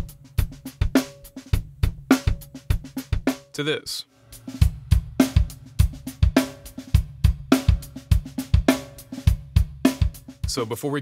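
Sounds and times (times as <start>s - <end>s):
drum kit playing a groove: 0.0s - 11.0s.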